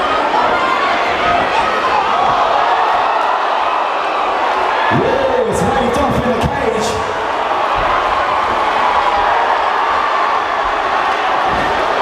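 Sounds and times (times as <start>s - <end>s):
crowd cheering and shouting: 0.0s - 12.0s.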